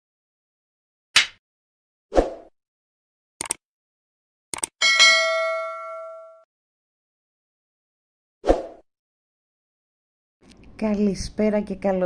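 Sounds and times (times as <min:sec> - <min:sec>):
notification bell ding: 0:04.8 - 0:06.4.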